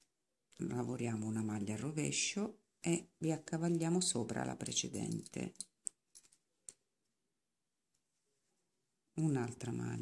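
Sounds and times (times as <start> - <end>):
knitting needles clicking: 3.7 - 7.1.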